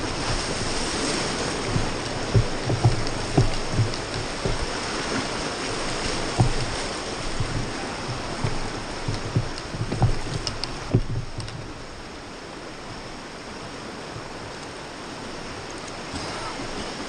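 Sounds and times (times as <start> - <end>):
river water rushing: 0.0 - 17.0
water thumping raft: 0.0 - 17.0.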